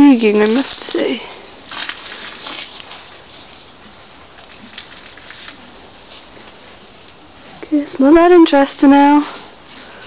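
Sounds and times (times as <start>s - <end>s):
faint rustling: 0.0s - 10.0s.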